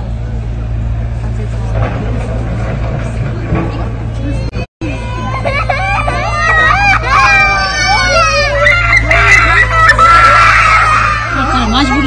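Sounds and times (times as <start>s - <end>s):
raised voices: 4.3s - 12.0s
child screaming: 4.8s - 12.0s.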